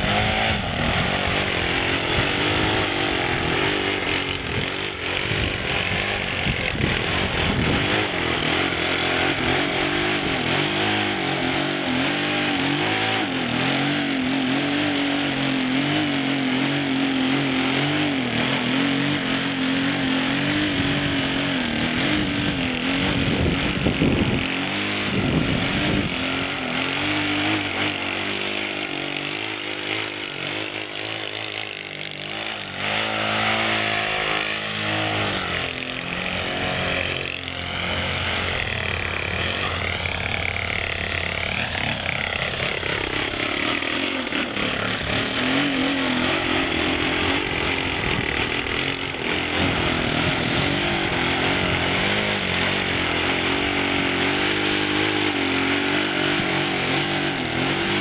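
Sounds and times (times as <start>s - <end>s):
model plane engine running: 0.0s - 58.0s
wind buffeting microphone: 4.4s - 8.0s, 22.3s - 26.2s.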